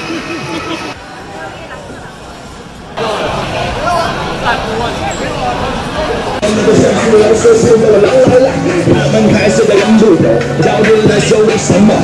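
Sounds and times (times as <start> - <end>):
street crowd noise: 0.0 - 12.0.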